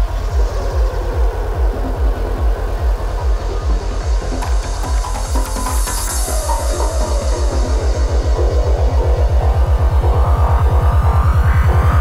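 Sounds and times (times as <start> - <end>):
rolling pulsing bassline: 0.0 - 12.0.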